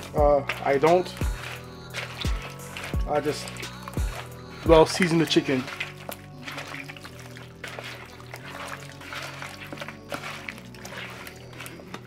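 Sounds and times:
background music with bass line: 0.0s - 12.0s
hands kneading raw chicken: 0.0s - 12.0s.

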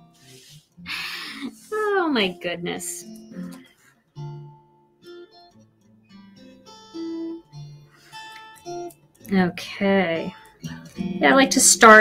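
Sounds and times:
acoustic guitar slow melody: 0.0s - 12.0s.

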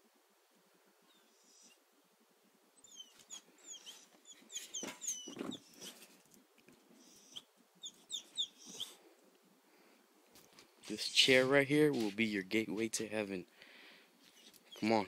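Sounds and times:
songbird chirping: 7.0s - 9.1s.

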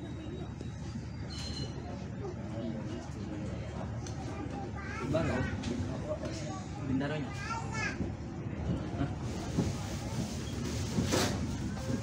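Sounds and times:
passengers' voices: 0.0s - 12.0s
train rumbling: 7.5s - 12.0s.

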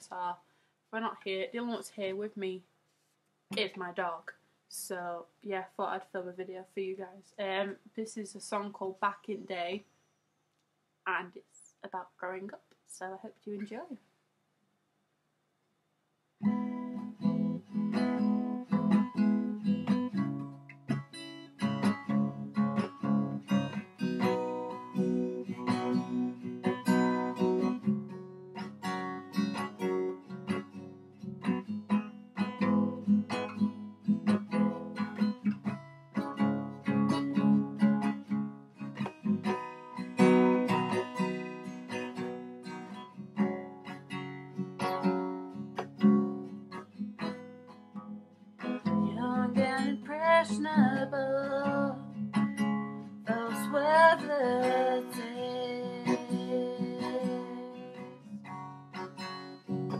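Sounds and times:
acoustic guitar playing chords: 16.4s - 59.9s.

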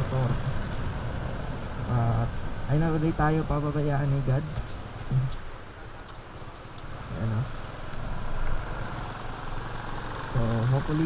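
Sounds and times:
motorcycle engine running: 0.0s - 11.0s
road and wind noise: 0.0s - 11.0s
person speaking: 1.9s - 5.4s.

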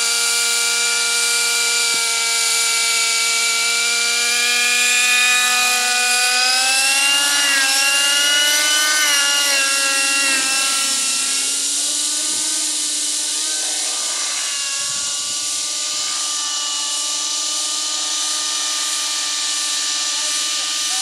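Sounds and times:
model helicopter engine and rotor: 0.0s - 21.0s.

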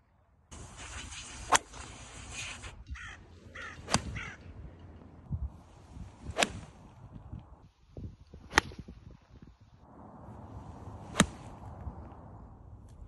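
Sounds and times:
golf iron striking ball: 3.5s - 5.3s, 6.2s - 6.8s, 11.0s - 11.9s.

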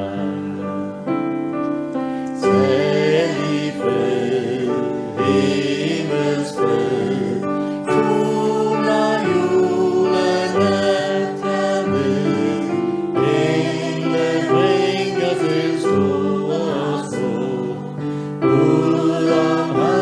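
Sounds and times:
choir singing a hymn: 0.0s - 1.1s, 2.2s - 20.0s.

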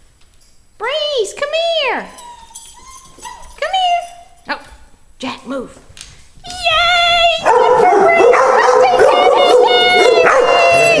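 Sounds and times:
puppy whining and yipping: 2.1s - 4.4s.

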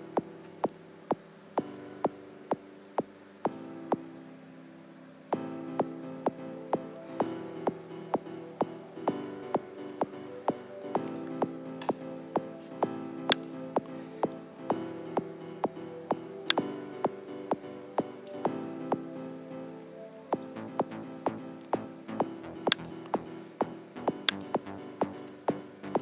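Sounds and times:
sustained piano chords: 0.0s - 26.0s
synth pad: 5.3s - 26.0s.

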